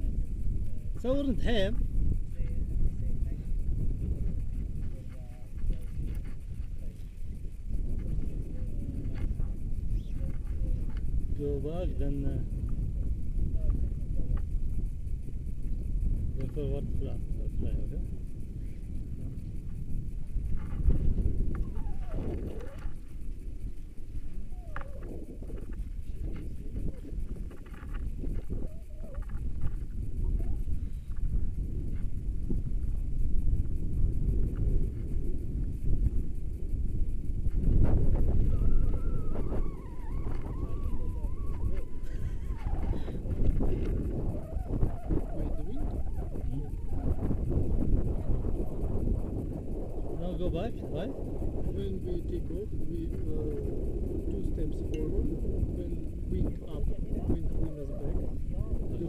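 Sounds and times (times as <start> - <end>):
wind buffeting microphone: 0.0 - 59.0
people talking: 0.7 - 3.6, 4.8 - 7.1, 8.0 - 12.5, 16.4 - 18.0, 26.0 - 27.2, 45.2 - 46.8, 50.1 - 59.0.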